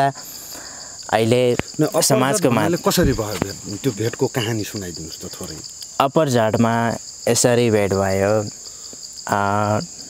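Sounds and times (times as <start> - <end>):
insects droning: 0.0 - 10.0
person speaking: 1.1 - 5.6.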